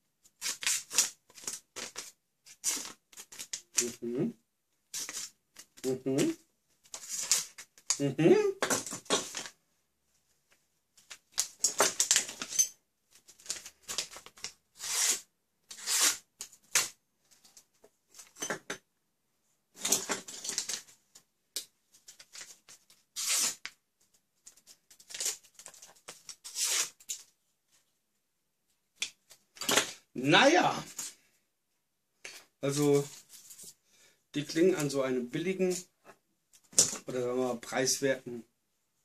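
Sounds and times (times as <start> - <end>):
knife cutting paper: 14.8 - 17.0.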